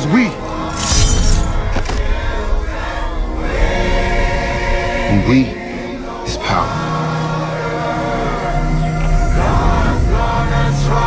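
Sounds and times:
choir singing held notes: 0.0s - 11.0s.

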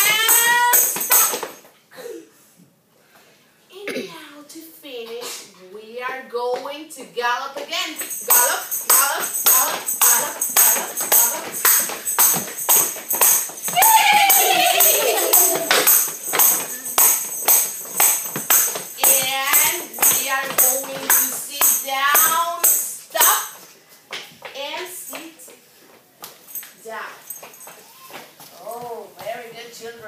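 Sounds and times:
tambourine struck by hand: 0.0s - 1.6s, 8.0s - 23.6s.

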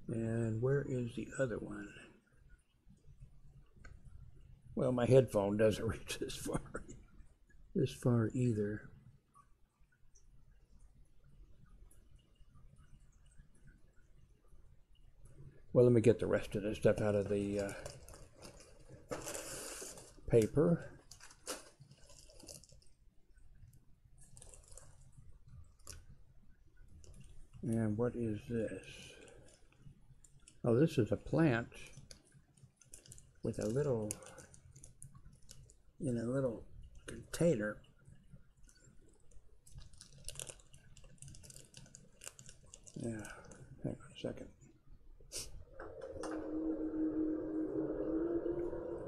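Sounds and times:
packing paper rustling: 17.1s - 20.3s, 20.9s - 23.0s, 39.7s - 43.6s
plastic container clicks and crackles: 38.7s - 43.6s.

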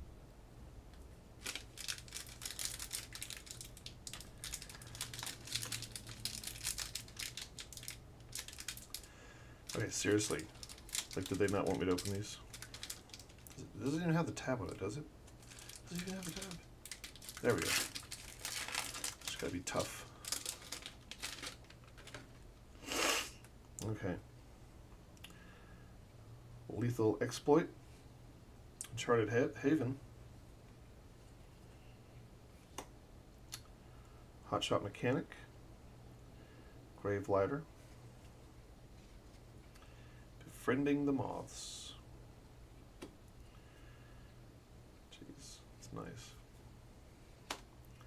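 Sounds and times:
foil wrapper crinkling: 1.4s - 14.0s, 14.6s - 22.5s.

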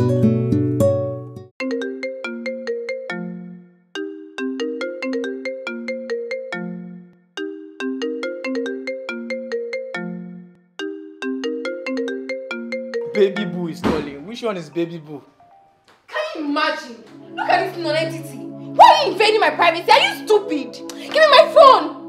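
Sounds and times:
phone ringtone bell-like melody: 1.6s - 13.6s.

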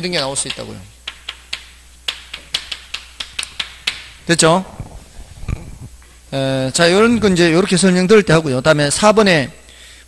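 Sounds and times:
chalk tapping on chalkboard: 0.2s - 4.1s.

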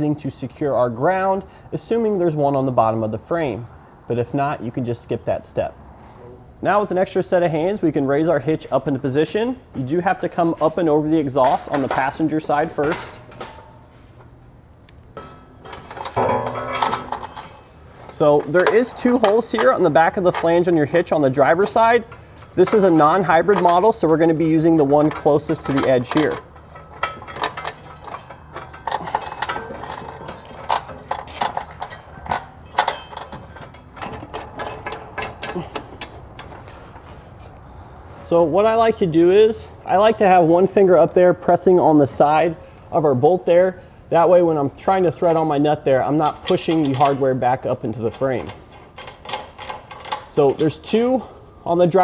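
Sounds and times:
bolts rattling against steel: 9.0s - 37.6s, 44.6s - 52.0s
metal trailer hitch clanking: 10.3s - 37.9s, 44.9s - 52.0s.

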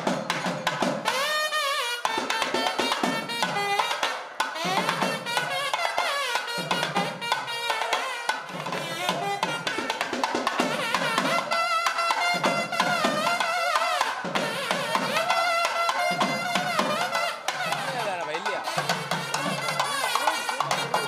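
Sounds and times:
wavering melodic wind instrument: 1.0s - 21.0s
fast drum strokes: 2.0s - 21.0s.

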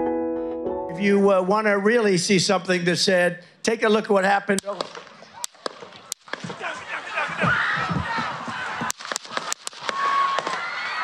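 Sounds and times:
crowd screaming: 5.2s - 11.0s
rifle gunshots: 8.9s - 10.7s.

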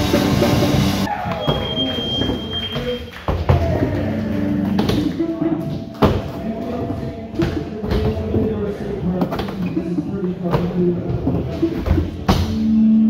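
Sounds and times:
rock music: 0.0s - 1.1s
voices echoing in large room: 1.1s - 13.0s.

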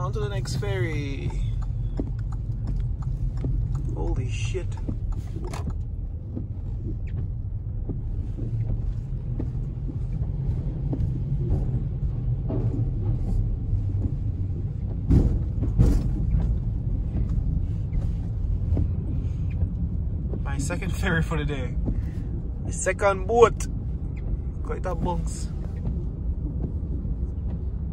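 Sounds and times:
car rumble from inside cabin: 0.0s - 27.9s
light clicks and knocks: 0.0s - 27.9s
wheels thumping over ramp: 11.0s - 17.3s.

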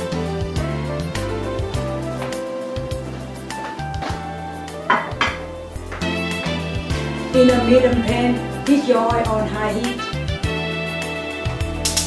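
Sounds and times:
background music: 0.0s - 12.0s
frying pan handled on stove: 4.9s - 5.5s
plate clinking on countertop: 4.9s - 5.5s.

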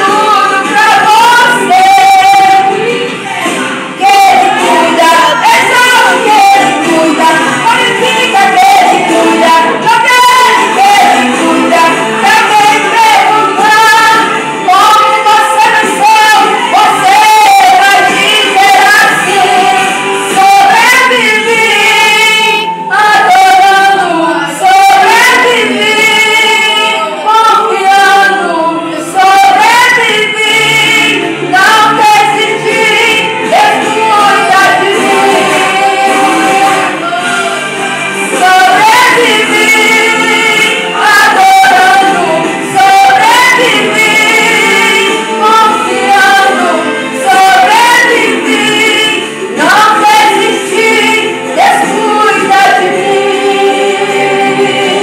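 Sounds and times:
woman singing gospel through loudspeakers: 0.0s - 55.0s.

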